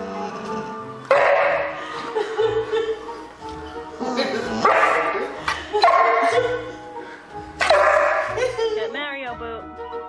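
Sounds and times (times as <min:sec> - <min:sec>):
background music: 0:00.0 - 0:10.0
puppy barking: 0:01.1 - 0:01.8, 0:04.6 - 0:06.6, 0:07.6 - 0:08.5.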